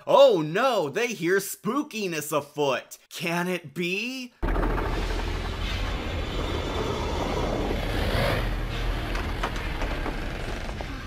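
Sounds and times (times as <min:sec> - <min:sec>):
low rumbling: 0:04.4 - 0:11.0.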